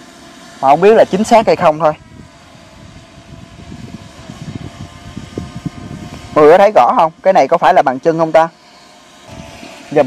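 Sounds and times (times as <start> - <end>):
drone propellers whining: 0.0 - 10.0.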